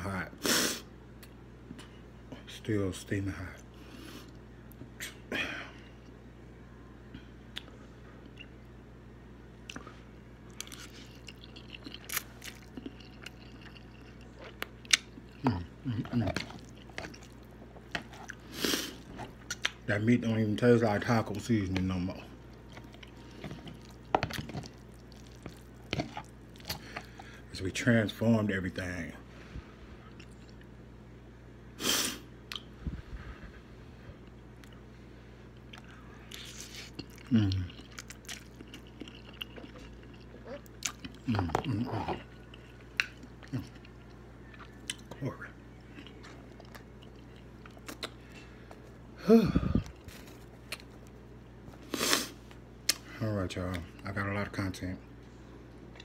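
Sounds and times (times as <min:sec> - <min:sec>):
wet chewing and mouth noises: 0:09.6 - 0:19.8, 0:21.2 - 0:27.3, 0:35.5 - 0:45.2, 0:45.8 - 0:49.0, 0:49.6 - 0:53.1
wet chewing smacks: 0:22.7 - 0:27.2, 0:45.9 - 0:48.3.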